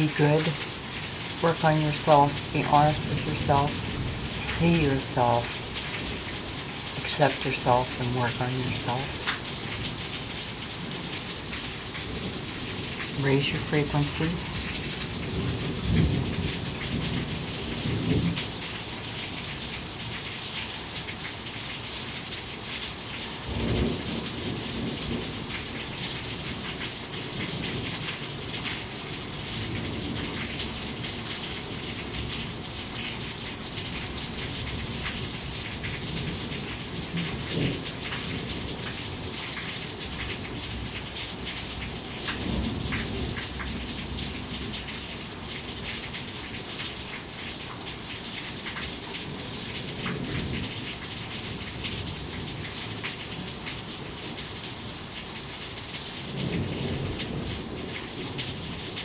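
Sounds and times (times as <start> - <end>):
heavy rain falling: 0.0 - 59.0.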